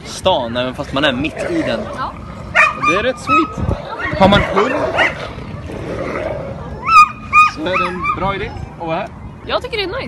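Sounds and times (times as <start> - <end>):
dog yapping: 2.6 - 5.3, 6.8 - 8.2.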